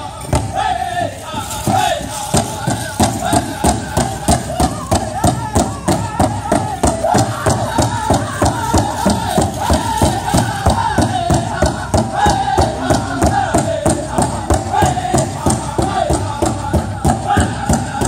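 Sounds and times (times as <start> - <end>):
voices in high wavering chant: 0.0 - 18.0
steady beat on large drum: 1.6 - 18.0.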